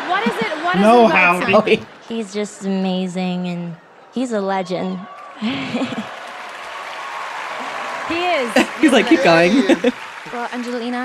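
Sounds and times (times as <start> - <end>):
audience applauding: 0.0 - 1.9, 5.0 - 11.0.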